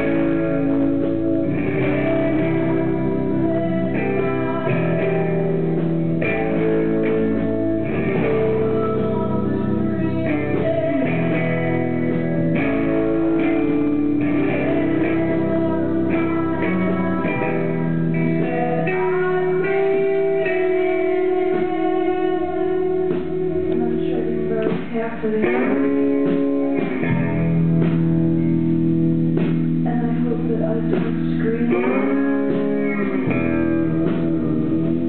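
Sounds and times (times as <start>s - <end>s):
electric guitar chords: 0.0s - 35.0s
live rock band playing: 0.0s - 35.0s.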